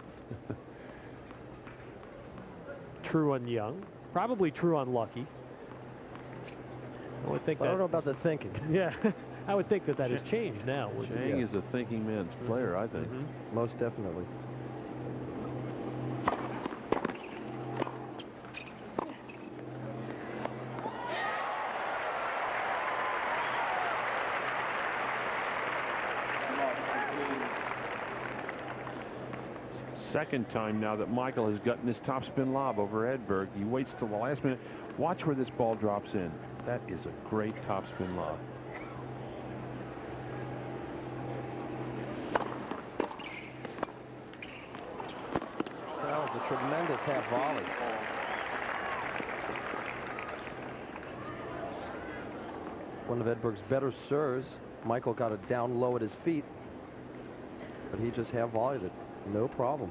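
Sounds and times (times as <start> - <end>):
tennis ball struck by rackets: 16.2 - 18.0, 42.2 - 45.7
crowd cheering and applauding: 20.8 - 29.1, 45.8 - 51.8.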